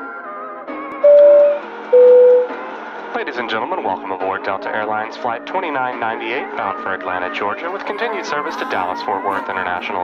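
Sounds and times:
faint music: 0.0s - 10.0s
two-tone cabin chime: 1.0s - 2.6s.

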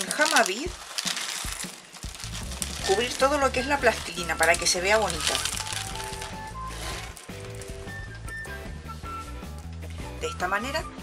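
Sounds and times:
light ticks of beads: 0.0s - 6.5s
plastic bag crinkling: 0.0s - 8.3s
background music with bass: 2.1s - 11.0s.

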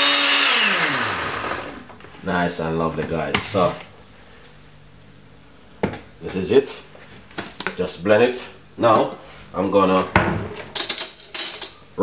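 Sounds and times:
man talking: 2.2s - 3.9s, 6.2s - 6.9s, 7.7s - 10.2s.

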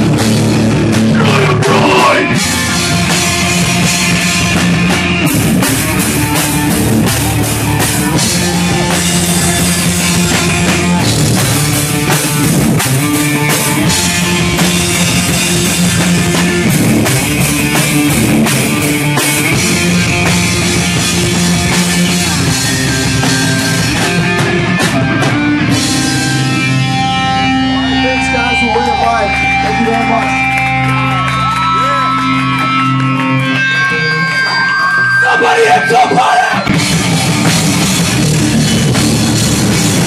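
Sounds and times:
drums: 0.0s - 40.0s
electric guitars: 0.0s - 40.0s.

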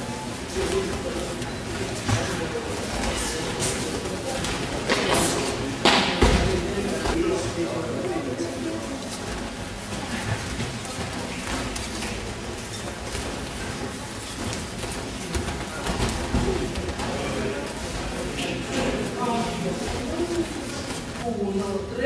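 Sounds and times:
feet shuffling: 0.0s - 21.3s
hubbub of many voices: 0.0s - 22.0s.

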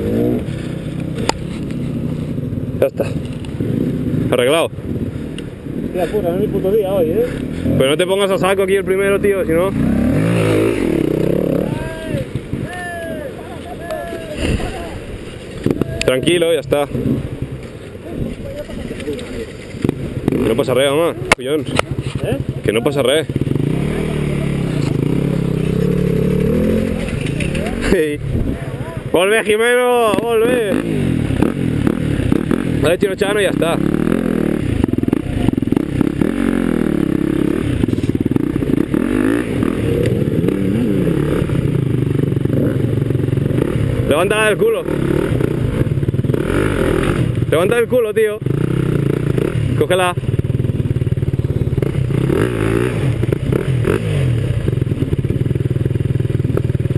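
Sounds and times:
dirt bike engine idling: 14.8s - 56.9s
rattling clatter: 18.4s - 20.0s, 26.7s - 28.0s.

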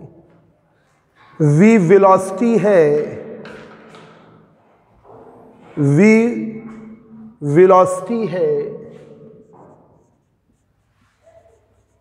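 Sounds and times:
marker writing on whiteboard: 2.0s - 12.0s.

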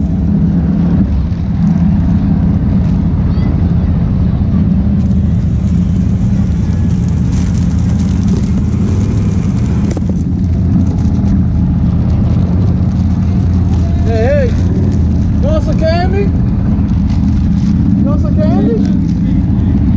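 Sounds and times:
utility vehicle engine running: 0.0s - 19.9s.

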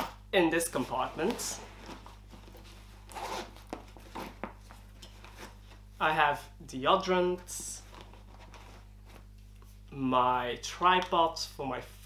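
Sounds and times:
zipper pulled open: 3.1s - 3.6s.

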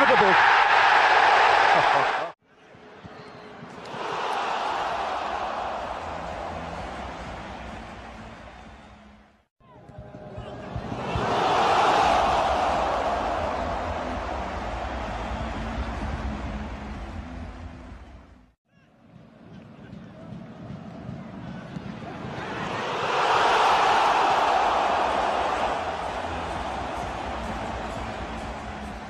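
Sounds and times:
stadium crowd cheering: 0.0s - 9.3s, 10.0s - 17.3s, 20.1s - 29.0s.

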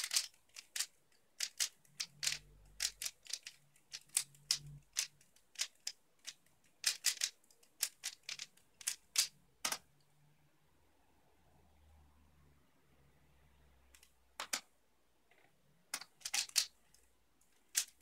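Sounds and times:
speed cube clicking: 0.0s - 9.9s, 15.9s - 17.0s, 17.6s - 18.0s.

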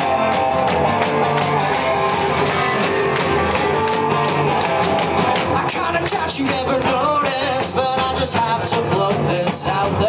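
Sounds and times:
electric guitar: 0.0s - 10.0s
live rock band playing: 0.0s - 10.0s
steady drum beat: 0.0s - 10.0s.

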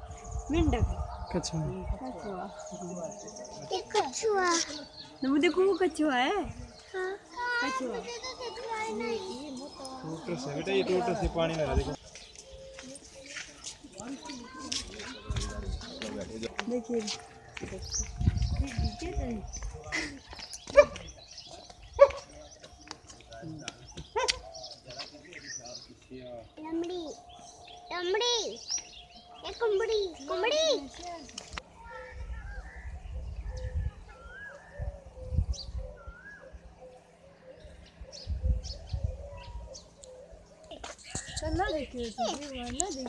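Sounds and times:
low microphone rumble: 0.0s - 3.9s, 14.8s - 22.6s, 31.5s - 40.6s.

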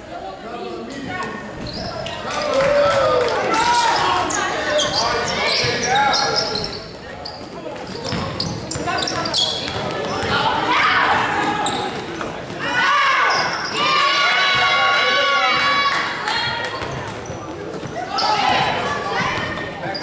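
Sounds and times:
balls bouncing on hard floor: 7.8s - 10.5s.

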